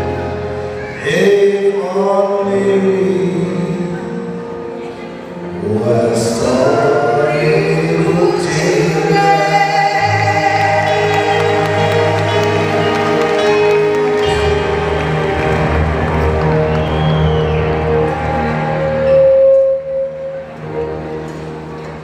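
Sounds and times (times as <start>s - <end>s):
band backing music: 0.0s - 22.0s
man and woman singing duet: 0.8s - 4.5s, 5.5s - 12.8s.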